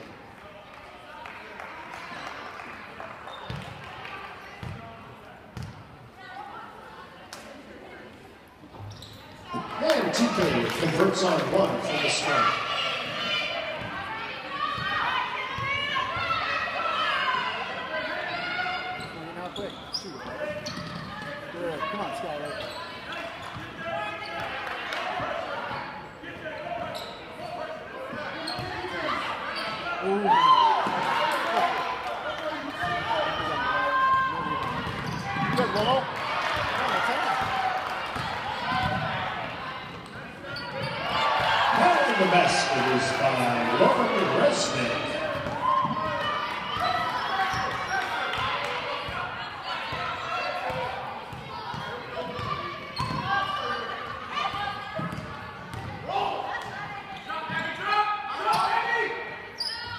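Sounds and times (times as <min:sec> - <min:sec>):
echoing voices: 0:09.6 - 0:12.8, 0:41.7 - 0:45.7.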